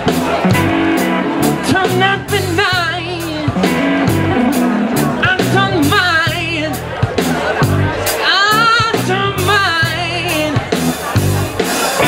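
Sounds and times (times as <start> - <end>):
bass guitar: 0.0 - 12.0
electric blues band playing: 0.0 - 12.0
lead guitar with wide vibrato: 0.0 - 12.0.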